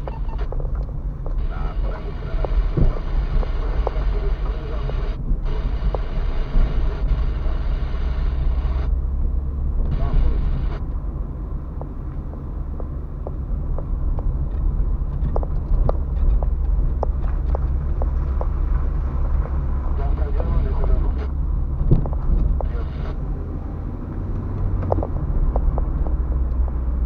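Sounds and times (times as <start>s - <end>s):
low rumble of tyres and engine: 0.0s - 27.0s.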